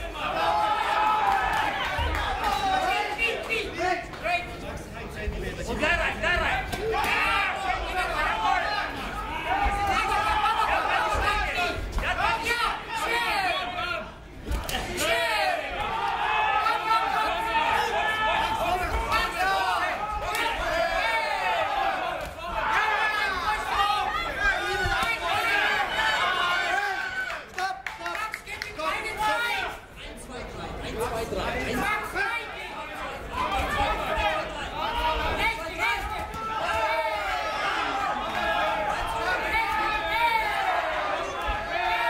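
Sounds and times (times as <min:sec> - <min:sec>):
crowd shouting: 0:00.0 - 0:03.8, 0:05.9 - 0:27.7, 0:31.7 - 0:42.0.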